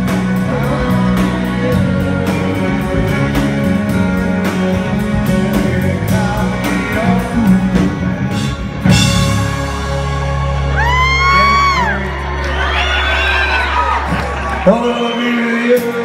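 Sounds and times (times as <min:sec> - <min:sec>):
person singing: 0:00.0 - 0:12.8
country rock band playing: 0:00.0 - 0:16.0
loud accented band hit: 0:07.9 - 0:11.0.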